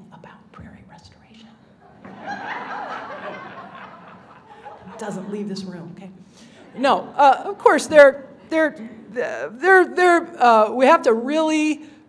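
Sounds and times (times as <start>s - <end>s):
audience laughing: 1.9s - 5.6s.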